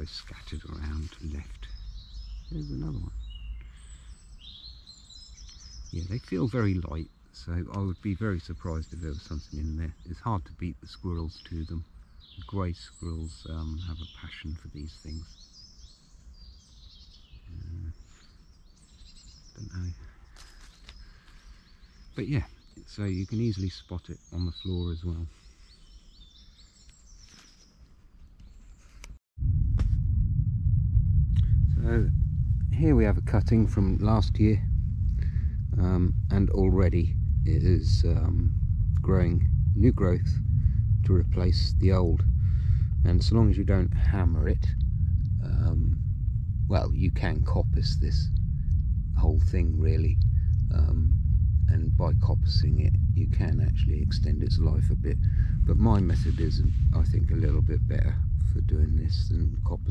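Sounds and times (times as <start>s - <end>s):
low steady rumble: 0.0s - 15.3s, 17.4s - 18.0s, 29.1s - 59.9s
songbird chirping: 0.0s - 29.2s, 31.7s - 57.7s.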